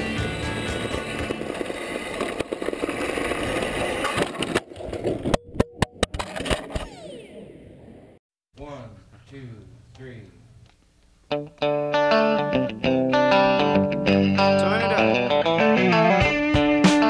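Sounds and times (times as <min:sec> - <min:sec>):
music: 0:00.0 - 0:01.6, 0:11.3 - 0:17.0
wheels whining as they spin down: 0:00.0 - 0:05.4, 0:06.2 - 0:08.2
rc car crashing and rolling: 0:00.3 - 0:07.5.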